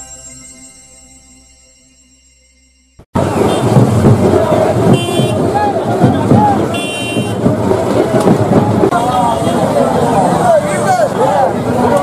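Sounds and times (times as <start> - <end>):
crowd shouting and talking: 3.2 - 12.0
vehicle horn toots: 4.9 - 5.5, 6.6 - 7.5.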